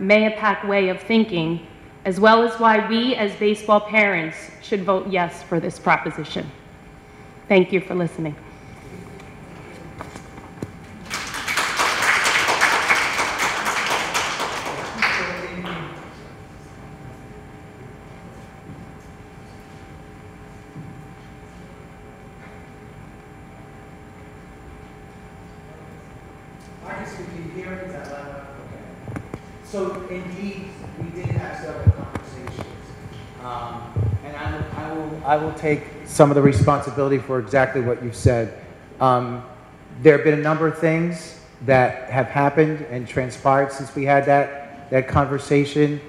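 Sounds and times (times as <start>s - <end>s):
audience applauding: 11.0s - 16.1s.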